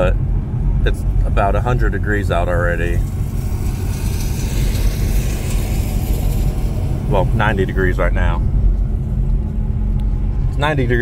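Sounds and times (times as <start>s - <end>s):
car engine rumble from inside cabin: 0.0s - 11.0s
road and wind noise: 0.0s - 11.0s.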